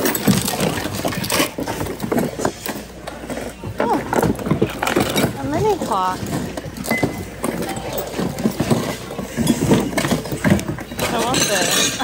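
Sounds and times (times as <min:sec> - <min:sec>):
plastic items clattering: 0:00.0 - 0:12.0
people talking: 0:03.4 - 0:04.6, 0:05.2 - 0:06.4, 0:10.9 - 0:12.0.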